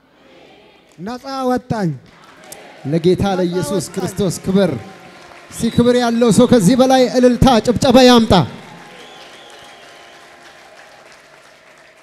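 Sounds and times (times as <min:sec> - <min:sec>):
congregation clapping: 0:00.9 - 0:12.0.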